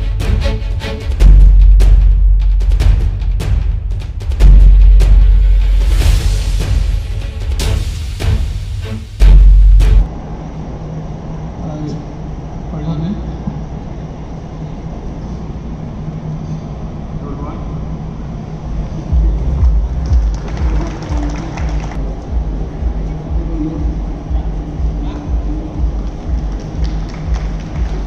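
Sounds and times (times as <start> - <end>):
low thumps: 0.0 - 10.1, 19.0 - 20.9
held low notes: 0.0 - 12.8, 17.9 - 28.0
music over public address: 18.7 - 28.0.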